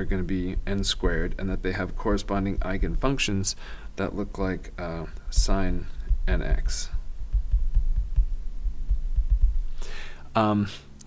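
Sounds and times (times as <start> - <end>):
low electrical hum: 0.0 - 11.0
stylus thuds on tablet: 5.0 - 9.8.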